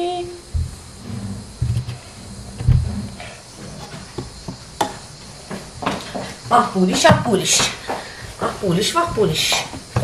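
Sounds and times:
dull low thumps: 0.4s - 3.5s.

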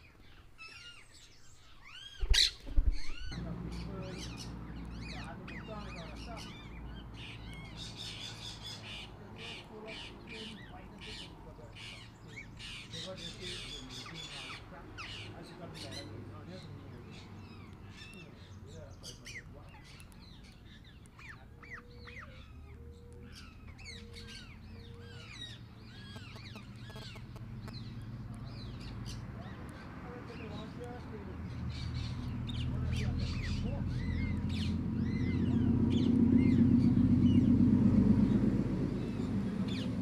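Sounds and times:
parrots squawking and chattering: 0.0s - 37.4s
parakeets chirping: 0.0s - 40.0s.

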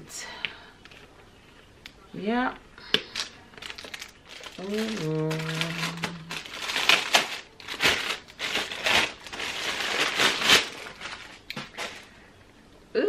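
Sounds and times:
plastic bag crinkling: 3.1s - 12.2s.

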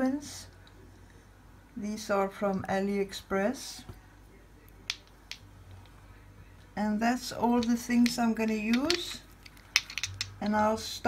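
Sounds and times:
cosmetic containers clicking: 4.9s - 5.9s, 7.4s - 10.6s.

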